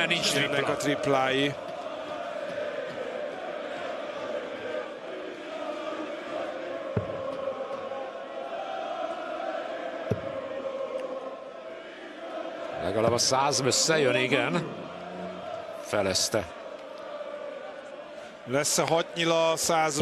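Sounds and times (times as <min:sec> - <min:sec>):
arena crowd chanting and singing: 0:00.0 - 0:20.0.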